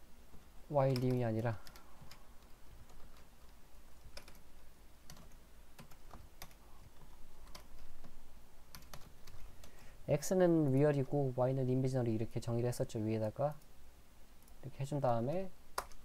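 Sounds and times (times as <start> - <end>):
computer keyboard typing: 0.9 - 9.7, 15.8 - 16.0.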